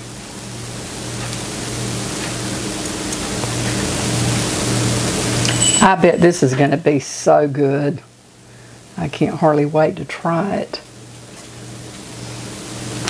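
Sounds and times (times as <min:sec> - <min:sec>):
steady hiss: 0:00.0 - 0:13.0
low hum: 0:05.4 - 0:06.9.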